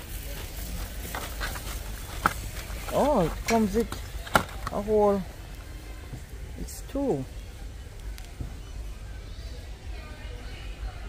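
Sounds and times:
faint indistinct noise: 0:00.0 - 0:11.0.

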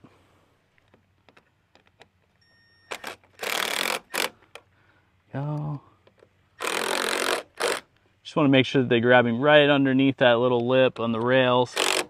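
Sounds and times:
impact driver scraping and rattling: 0:02.9 - 0:04.7, 0:06.1 - 0:07.8, 0:11.0 - 0:12.0.

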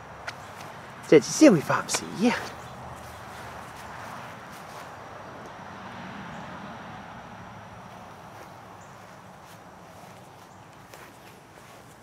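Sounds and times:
outdoor background hiss: 0:00.0 - 0:12.0
footsteps on grass: 0:00.3 - 0:05.0, 0:07.9 - 0:12.0.

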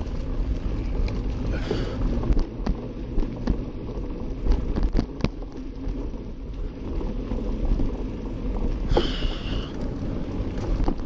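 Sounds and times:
bike rattles and clicks: 0:00.0 - 0:11.0
bike tyres rumbling on dirt: 0:00.0 - 0:11.0.

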